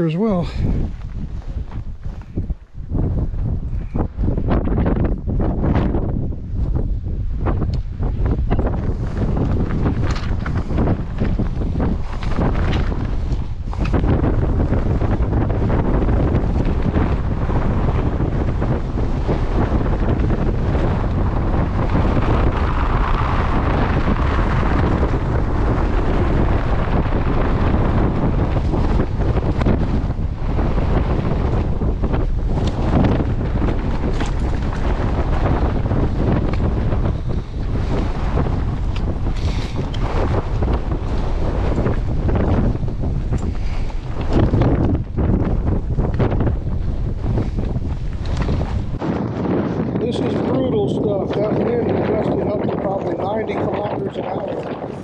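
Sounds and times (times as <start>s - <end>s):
gusty wind buffeting microphone: 0.0s - 55.0s.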